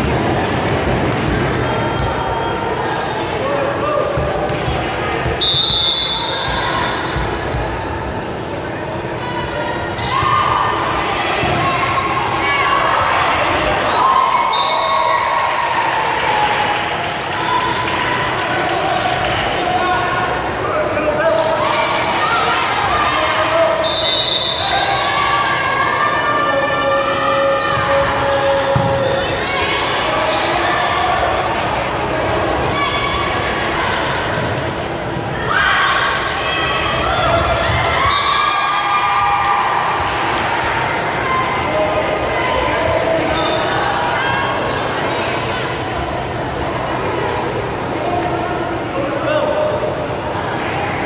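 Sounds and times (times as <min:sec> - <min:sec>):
players and spectators calling out: 0:00.0 - 0:51.0.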